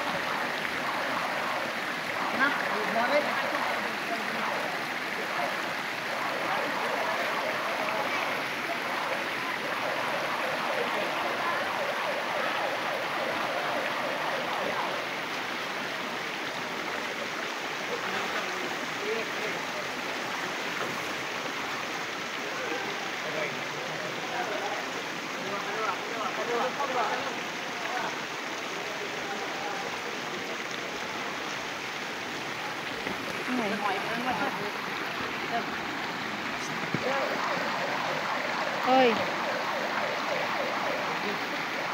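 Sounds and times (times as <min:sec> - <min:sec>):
stream flowing over rocks: 0:00.0 - 0:41.9.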